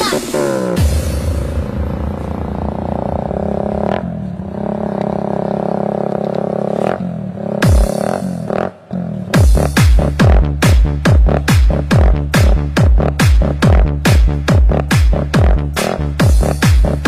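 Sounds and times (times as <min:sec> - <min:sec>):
low droning synth chord: 0:00.2 - 0:06.0.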